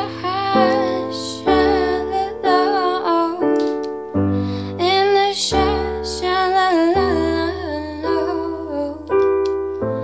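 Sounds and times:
woman singing slow melody: 0:00.0 - 0:03.8, 0:04.6 - 0:09.4.

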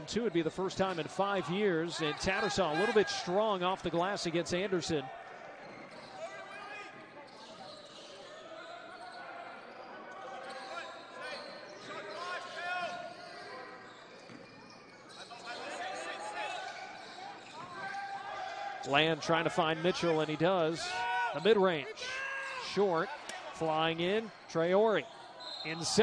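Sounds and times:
voices of players and crowd: 0:00.0 - 0:26.0
sneakers squeaking: 0:05.2 - 0:18.4, 0:19.7 - 0:26.0.

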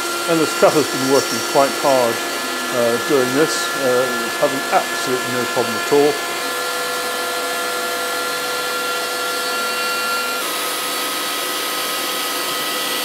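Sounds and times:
dust extraction hiss: 0:00.0 - 0:07.1
router spindle whine: 0:00.0 - 0:13.0.

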